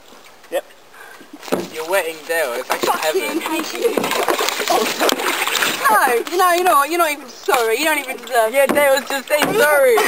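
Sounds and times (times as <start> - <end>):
paddles splashing in water: 0.0 - 10.0.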